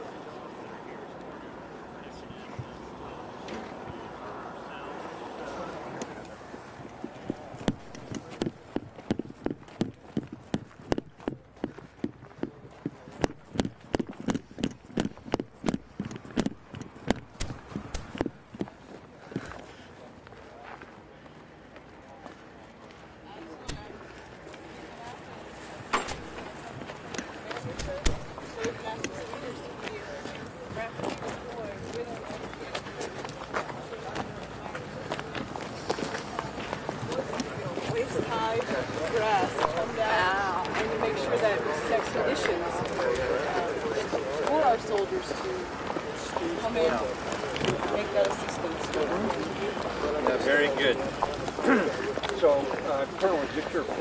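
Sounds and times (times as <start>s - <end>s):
indistinct voices talking: 0.0s - 20.2s, 23.3s - 54.0s
footsteps on dry dirt: 6.4s - 41.0s.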